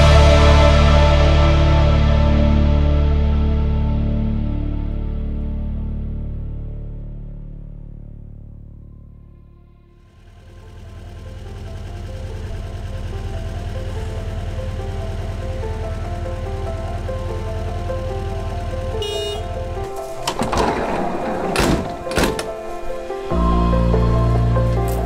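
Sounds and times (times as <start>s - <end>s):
instrumental music with bass: 0.0s - 10.1s, 23.2s - 25.0s
van sliding door clunking: 10.7s - 25.0s.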